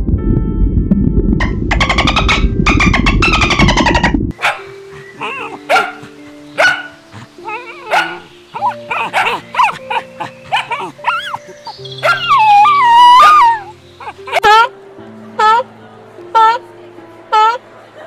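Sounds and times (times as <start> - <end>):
background music: 0.0 - 18.0
dolphins clicking and squealing: 1.7 - 4.1, 7.4 - 14.5
dog barking and yipping: 3.2 - 7.0, 7.6 - 14.6
dog whimpering and whining: 7.4 - 14.6.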